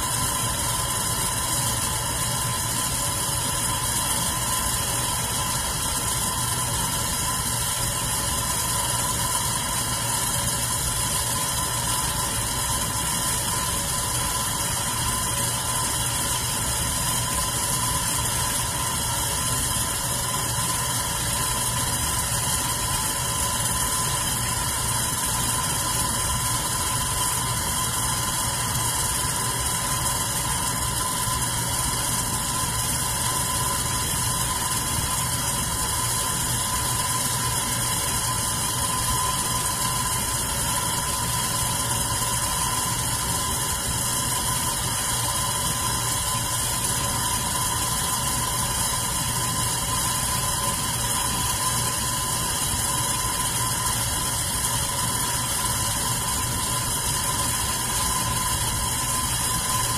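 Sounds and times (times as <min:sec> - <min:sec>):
electric fan motor hum: 0:00.0 - 0:59.9.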